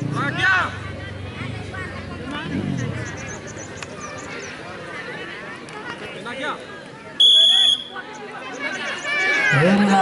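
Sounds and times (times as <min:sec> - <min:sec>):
spectators chattering: 0:00.0 - 0:10.0
referee's whistle blast: 0:07.2 - 0:08.0.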